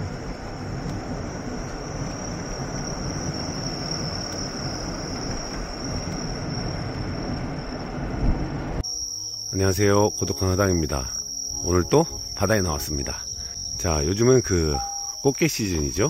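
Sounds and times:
car road and wind noise: 0.0s - 8.8s
crickets trilling: 0.0s - 16.0s.

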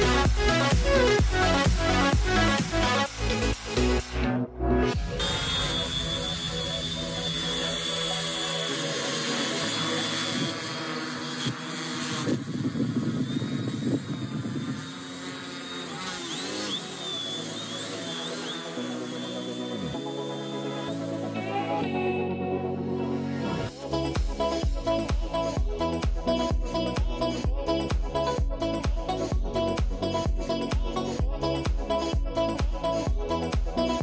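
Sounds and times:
quadcopter motors buzzing: 0.0s - 4.2s, 5.0s - 22.0s, 23.3s - 34.0s.

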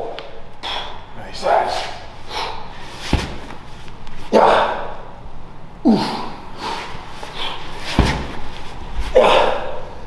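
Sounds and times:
medicine ball thud against body: 3.0s - 3.6s, 7.8s - 8.5s.

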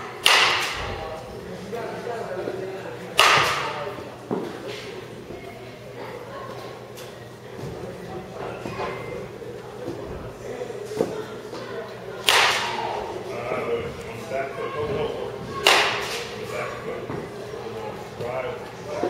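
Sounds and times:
distant voices: 0.0s - 19.0s
baseball bat cracking balls: 0.2s - 0.8s, 3.2s - 3.8s, 12.2s - 12.8s, 15.5s - 16.4s.

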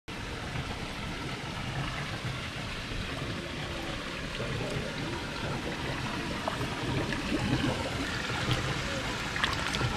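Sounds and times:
small waterfall rushing: 0.1s - 9.9s.

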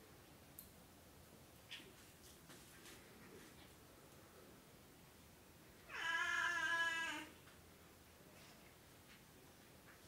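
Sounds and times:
faint soft clicks: 0.5s - 0.8s.

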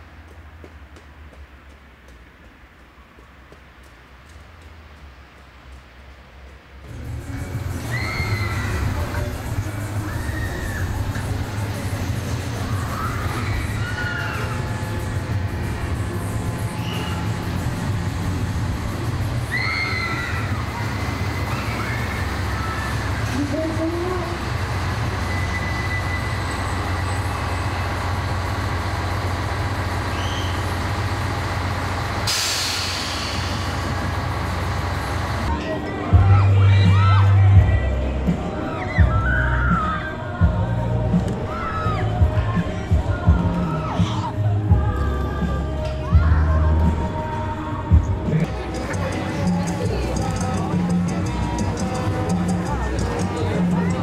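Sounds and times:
railcar engine rumble: 0.0s - 54.0s
air hissing: 32.2s - 34.8s.

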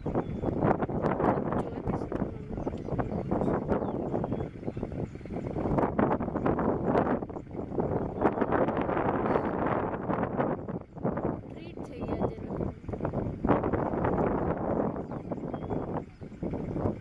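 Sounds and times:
wind buffeting microphone: 0.0s - 17.0s.

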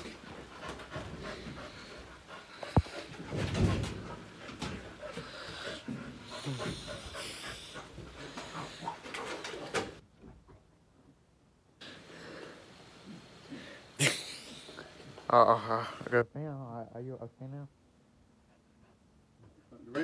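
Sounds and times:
dog panting: 0.0s - 10.0s, 18.4s - 19.9s.

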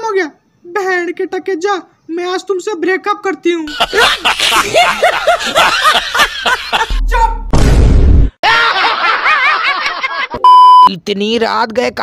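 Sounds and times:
snickering laugh: 3.7s - 6.9s.

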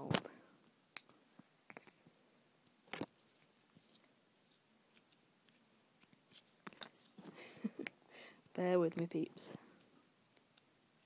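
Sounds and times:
faint handling noise: 1.0s - 10.7s.

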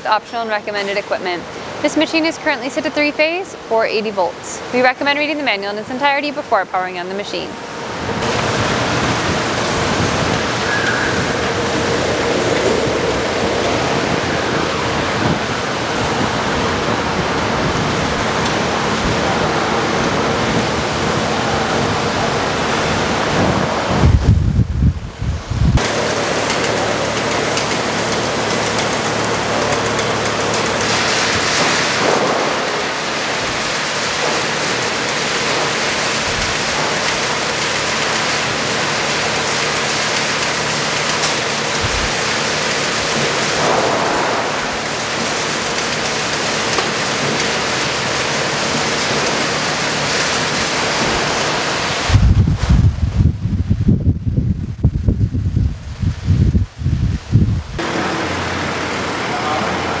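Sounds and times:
conveyor rushing hiss: 0.0s - 53.2s, 55.8s - 60.0s.

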